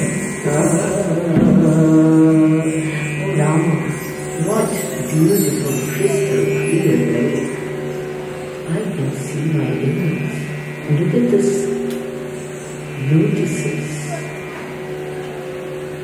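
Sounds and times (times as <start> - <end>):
steady drone: 0.0 - 16.0.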